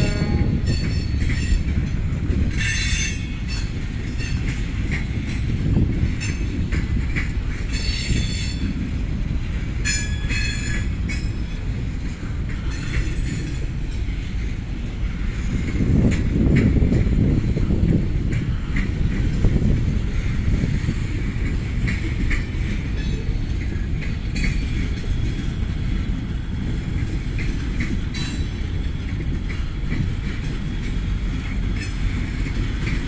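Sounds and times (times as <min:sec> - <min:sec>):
train wheel squeal: 0:00.0 - 0:06.8, 0:07.6 - 0:08.8, 0:09.8 - 0:14.0, 0:23.0 - 0:25.6, 0:27.5 - 0:28.8
freight train rumbling past: 0:00.0 - 0:33.0.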